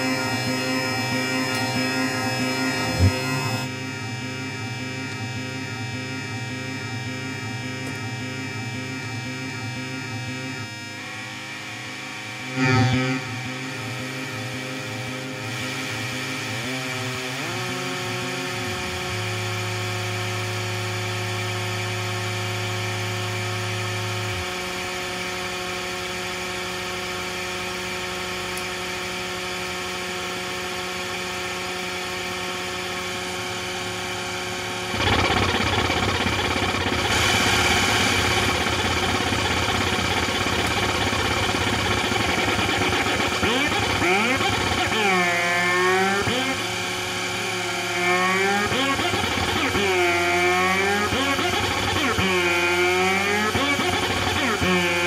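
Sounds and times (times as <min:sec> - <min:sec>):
noisy synth wash: 0:00.0 - 0:27.4, 0:32.0 - 0:55.0
synthesizer buzzing drones: 0:00.0 - 0:55.0.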